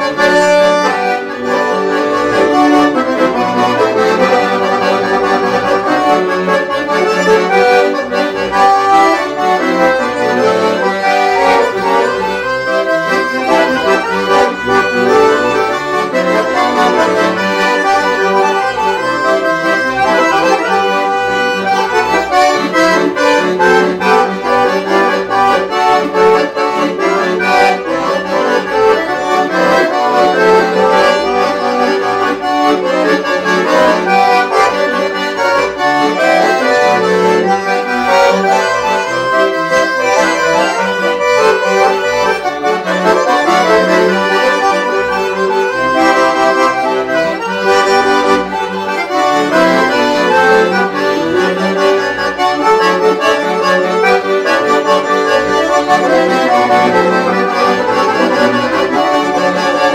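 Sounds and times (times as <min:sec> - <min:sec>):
accordions playing dance tune: 0:00.0 - 0:59.9.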